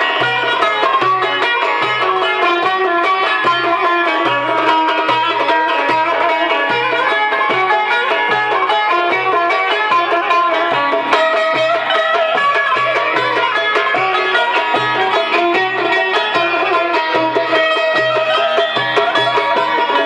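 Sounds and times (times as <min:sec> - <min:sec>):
hand drum beat: 0:00.0 - 0:20.0
plucked lutes: 0:00.0 - 0:20.0
violin: 0:00.0 - 0:20.0.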